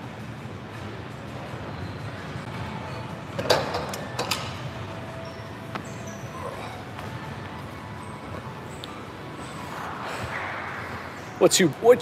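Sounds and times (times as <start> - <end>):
gym background noise: 0.0 - 12.0.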